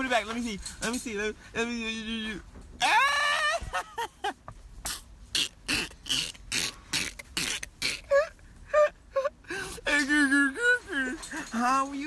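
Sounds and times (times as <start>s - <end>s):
person squealing: 2.8s - 3.8s, 4.9s - 11.5s.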